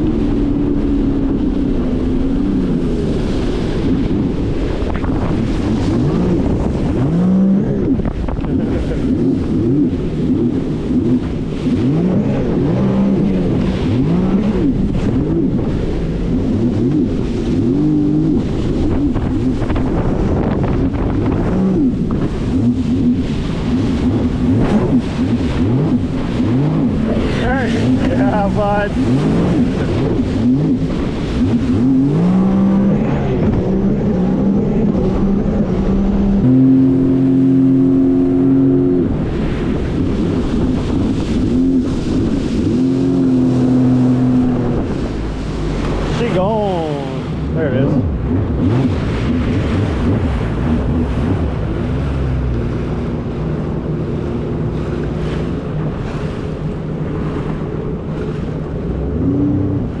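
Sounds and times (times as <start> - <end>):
personal watercraft engine revving: 0.0 - 60.0
water rushing along hull: 0.0 - 60.0.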